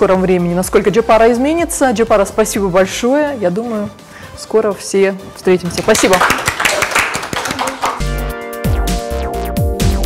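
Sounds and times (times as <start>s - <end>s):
people clapping: 5.7s - 8.3s.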